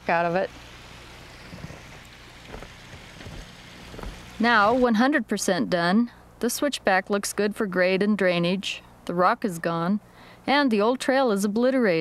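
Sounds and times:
steady outdoor hiss: 0:00.0 - 0:12.0
footsteps on loose rock: 0:01.4 - 0:04.8.

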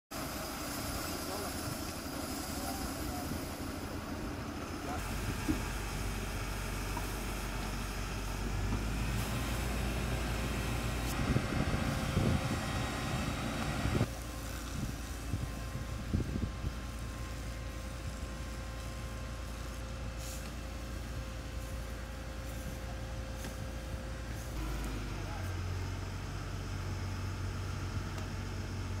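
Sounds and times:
fire engine idling rumble: 0:00.2 - 0:29.0.

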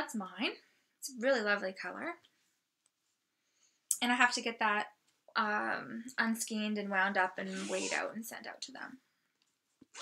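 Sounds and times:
woman's voice: 0:03.9 - 0:09.0.

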